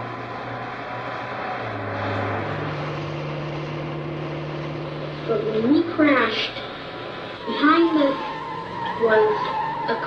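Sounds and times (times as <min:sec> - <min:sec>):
car engine and road noise: 0:00.0 - 0:10.0
low droning tone: 0:00.0 - 0:10.0.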